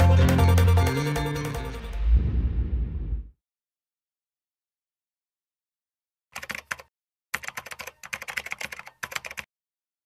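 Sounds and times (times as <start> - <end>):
rapid keyboard typing: 6.4 - 9.5.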